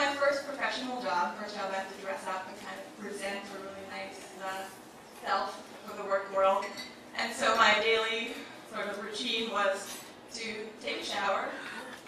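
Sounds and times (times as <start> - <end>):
woman talking into microphone: 0.0 - 12.0
dishes and cutlery clinking: 6.0 - 7.9.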